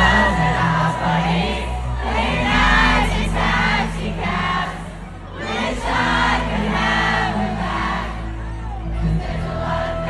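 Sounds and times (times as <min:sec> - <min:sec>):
crowd singing along: 0:00.0 - 0:10.0
live pop band music: 0:00.0 - 0:10.0.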